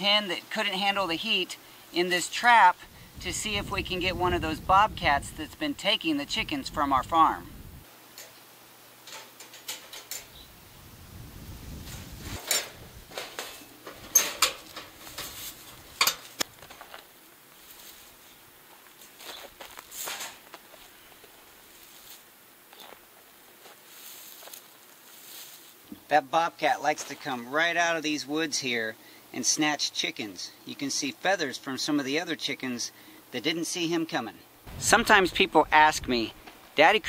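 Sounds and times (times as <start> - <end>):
wire cage clinking and rattling: 9.1 - 10.3, 12.4 - 16.9.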